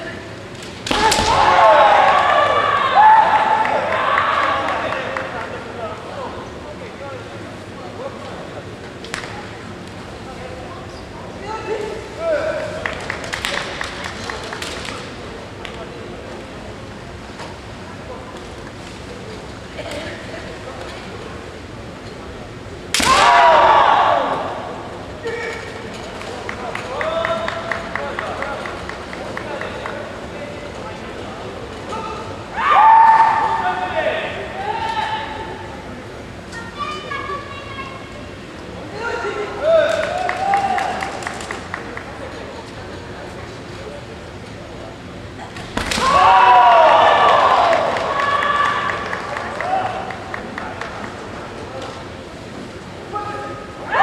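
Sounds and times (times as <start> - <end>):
loud shout: 0.9 - 5.2, 23.0 - 24.7, 31.9 - 35.6, 39.0 - 41.2, 45.9 - 50.2, 53.1 - 54.0
people clapping: 1.7 - 5.7, 12.6 - 15.0, 26.1 - 30.2, 39.9 - 42.6, 46.7 - 51.7
bamboo sword strike: 22.9 - 23.5.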